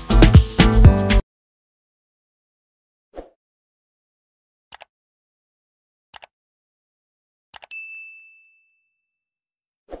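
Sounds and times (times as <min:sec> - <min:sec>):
bell-like notification ding: 0:07.7 - 0:09.2.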